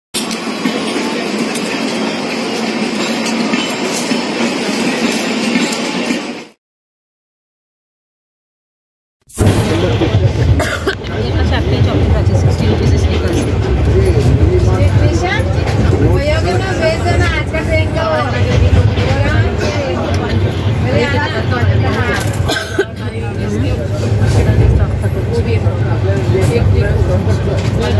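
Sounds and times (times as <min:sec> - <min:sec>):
train wheels rumbling on rail: 0:00.2 - 0:06.6, 0:09.4 - 0:27.9
voices talking: 0:09.4 - 0:27.9.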